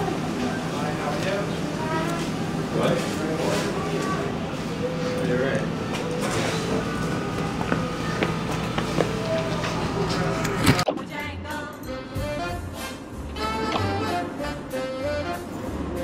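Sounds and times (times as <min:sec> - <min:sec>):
muffled voices: 0:00.0 - 0:11.7.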